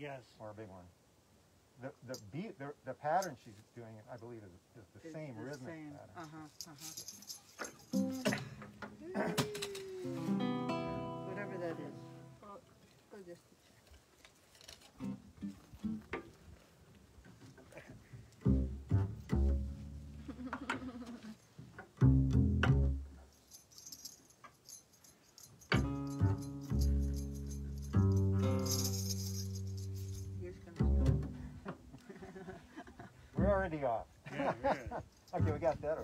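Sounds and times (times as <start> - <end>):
plucked double bass notes: 18.4 - 20.5, 21.9 - 23.2, 25.7 - 31.8, 33.4 - 33.8, 35.4 - 35.8.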